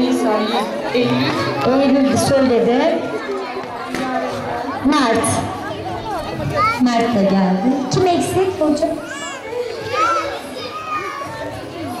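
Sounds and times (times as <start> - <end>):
young children talking and calling out: 0.0 - 12.0.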